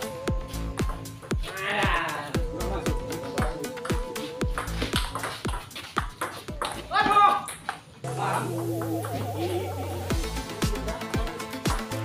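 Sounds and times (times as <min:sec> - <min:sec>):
electronic music with kick drum: 0:00.1 - 0:05.6, 0:08.1 - 0:12.0.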